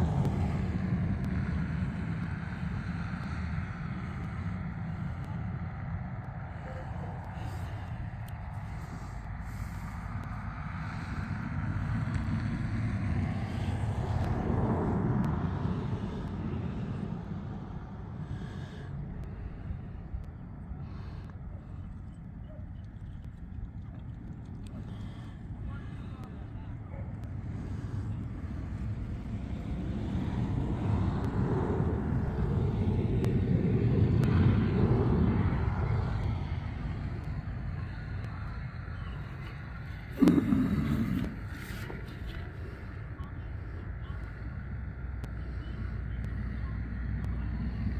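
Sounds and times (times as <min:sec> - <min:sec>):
faint distant voices: 0:00.0 - 0:47.9
wind rumbling on microphone: 0:00.0 - 0:47.9.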